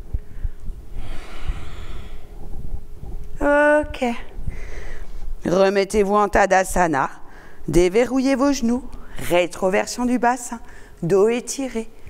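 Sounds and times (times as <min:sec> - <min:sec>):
woman breathing out: 0:00.3 - 0:02.4, 0:04.5 - 0:05.1.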